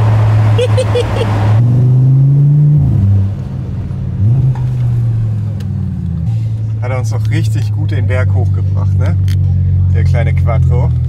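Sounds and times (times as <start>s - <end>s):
car engine pulling uphill: 0.0s - 11.0s.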